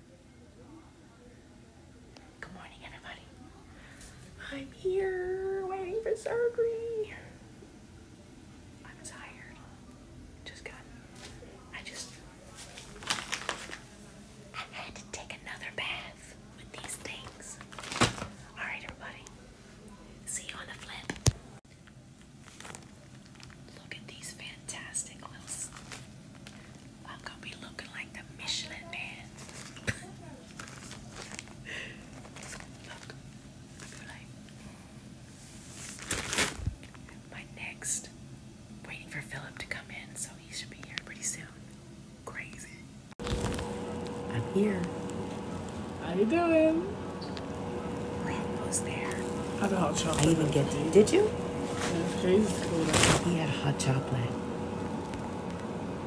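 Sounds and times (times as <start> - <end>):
woman whispering: 2.4 - 3.5, 4.4 - 7.4, 8.8 - 9.8, 10.4 - 11.0, 11.7 - 12.3, 14.5 - 17.6, 18.5 - 19.4, 20.3 - 21.2, 23.7 - 25.8, 27.0 - 29.4, 33.9 - 34.3, 37.2 - 38.1, 38.8 - 42.9, 48.1 - 49.6
handling rustle: 12.5 - 14.0, 30.4 - 33.0, 49.1 - 53.4
steady hum: 31.2 - 56.0.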